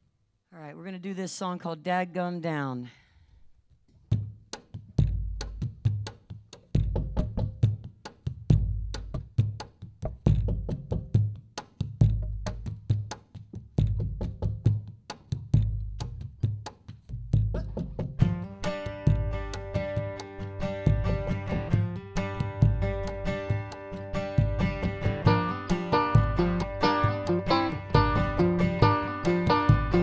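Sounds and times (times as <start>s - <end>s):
kick drum thumps with clicks: 8.5s - 11.4s, 12.0s - 16.7s
acoustic guitars and strings: 18.4s - 30.0s.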